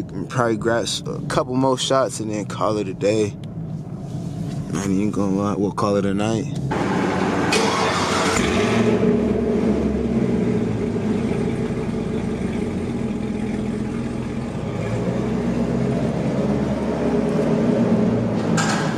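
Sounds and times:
car engine idling: 0:00.0 - 0:18.9.

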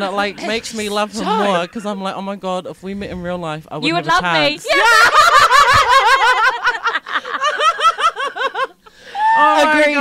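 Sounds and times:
women laughing loudly: 0:04.7 - 0:09.4.

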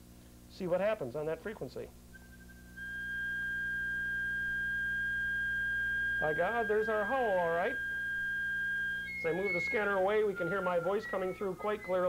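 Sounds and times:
audio feedback howl: 0:02.1 - 0:12.0.

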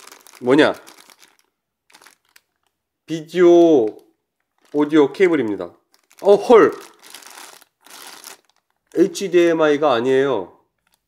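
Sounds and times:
plastic bag crinkling: 0:00.0 - 0:02.8, 0:03.8 - 0:09.4.

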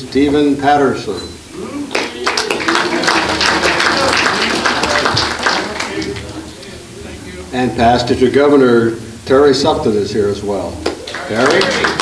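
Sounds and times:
voices: 0:01.1 - 0:12.0
people clapping: 0:01.9 - 0:06.6, 0:10.8 - 0:12.0.

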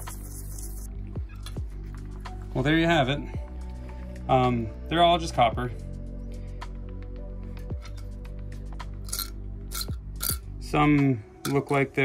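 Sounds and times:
small metal chips clinking: 0:00.0 - 0:00.9, 0:09.1 - 0:10.4
soft background music: 0:00.0 - 0:12.0.

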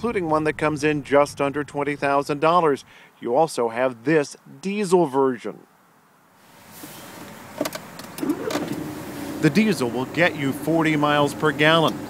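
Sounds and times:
diesel engine cranking and idling: 0:06.7 - 0:12.0.

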